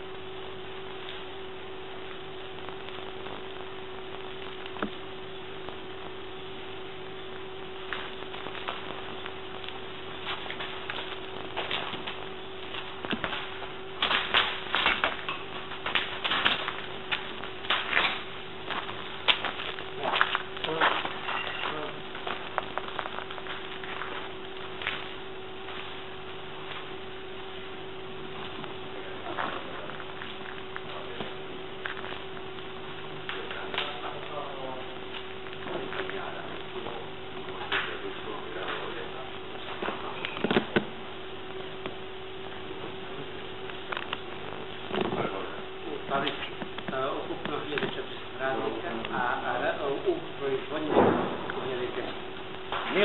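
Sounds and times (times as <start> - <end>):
low hum and hiss: 0.0 - 53.0
footsteps on rubble and glass: 10.2 - 27.0.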